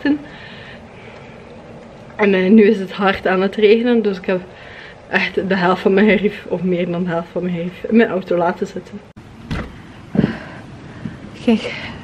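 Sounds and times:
heavy thud: 0:09.4 - 0:11.2.

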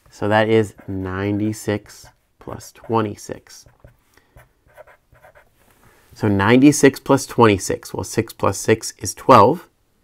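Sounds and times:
marker scratching on paper: 0:00.6 - 0:05.6.

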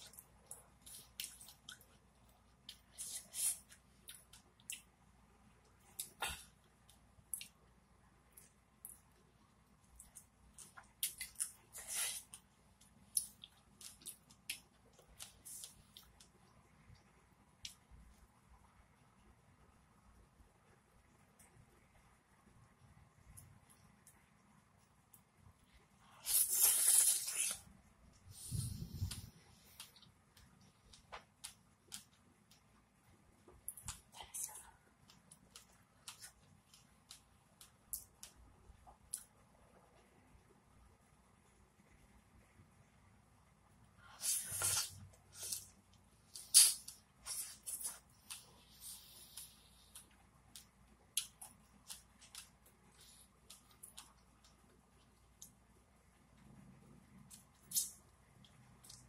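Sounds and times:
person chewing: 0:00.0 - 0:02.0, 0:09.8 - 0:12.4, 0:26.2 - 0:27.6, 0:33.7 - 0:39.3, 0:44.2 - 0:45.7, 0:46.3 - 0:55.1.

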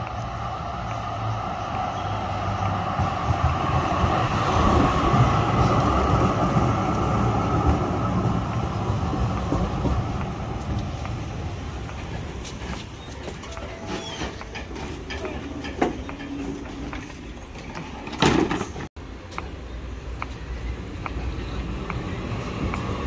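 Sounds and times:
tram wheels rumbling on track: 0:00.0 - 0:23.0
tram whine: 0:00.0 - 0:23.0.

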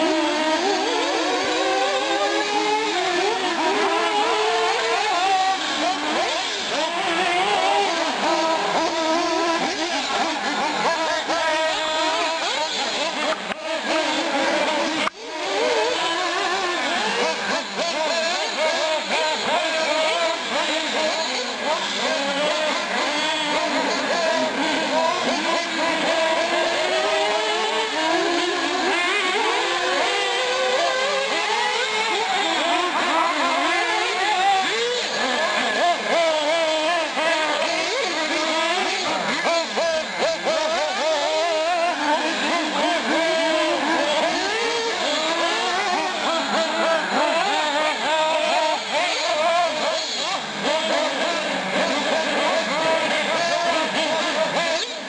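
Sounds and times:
model car engines whining: 0:00.0 - 0:55.0.

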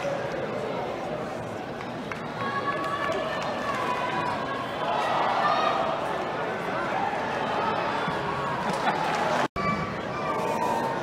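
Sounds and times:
stadium crowd ambience: 0:00.0 - 0:11.0
long drawn-out shout: 0:02.4 - 0:08.3.

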